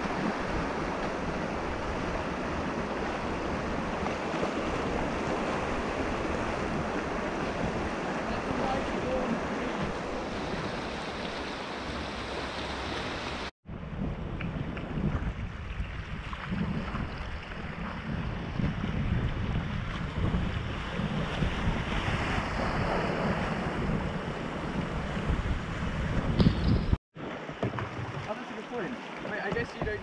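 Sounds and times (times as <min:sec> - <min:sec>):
river rushing and splashing: 0:00.0 - 0:13.5
wind buffeting microphone: 0:00.0 - 0:27.0.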